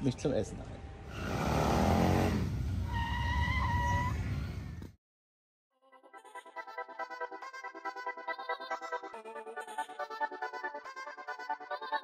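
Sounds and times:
motorcycles riding past: 1.1s - 4.9s.

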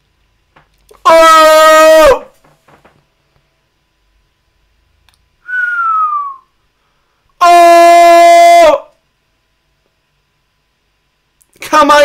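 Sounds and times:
man crying out: 1.0s - 2.4s, 7.4s - 8.9s
short falling whistle: 5.4s - 6.6s.

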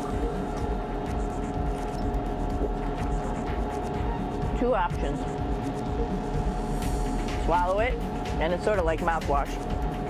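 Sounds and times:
constant tone: 0.0s - 10.0s
ventilation and equipment hum: 0.0s - 10.0s.

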